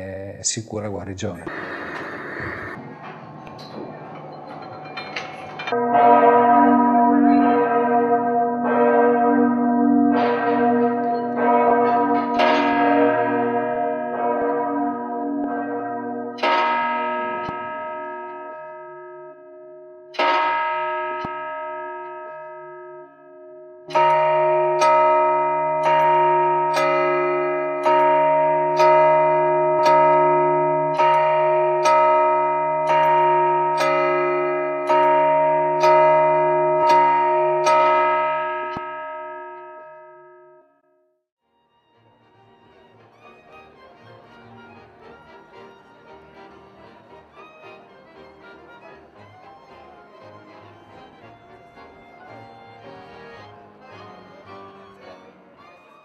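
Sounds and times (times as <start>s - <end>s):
large bronze bell ringing: 2.8s - 40.6s.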